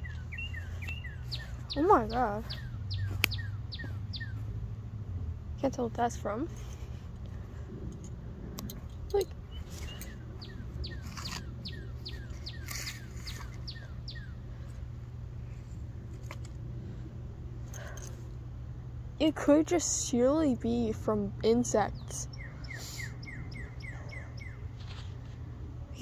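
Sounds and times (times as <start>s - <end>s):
steady low rumble: 0.0s - 26.0s.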